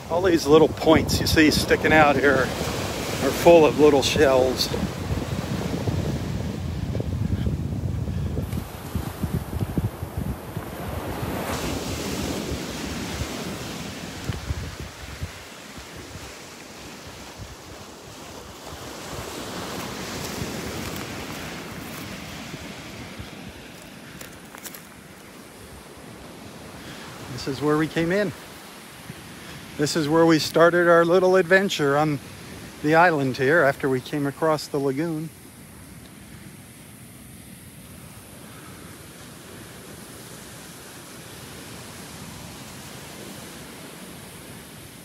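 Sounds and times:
wind buffeting the microphone: 0.0s - 29.8s
small surf breaking on a beach: 0.0s - 45.0s.

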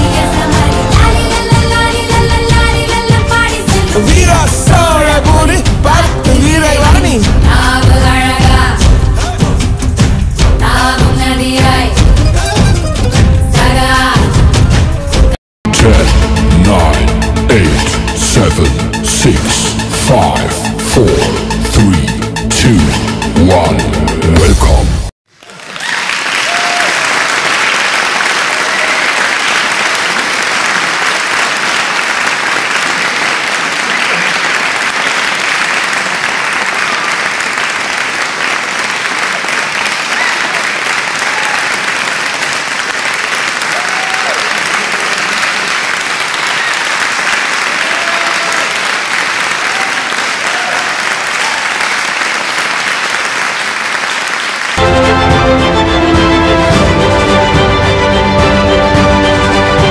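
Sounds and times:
music: 0.0s - 25.1s, 54.8s - 59.9s
crowd applauding: 25.3s - 55.4s.

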